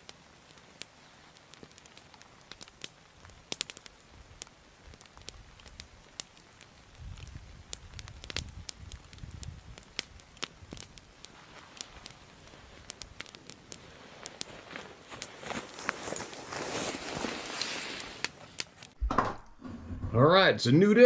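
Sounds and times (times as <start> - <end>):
campfire crackling: 0.0 - 19.0
sharp fire pops: 0.0 - 19.4.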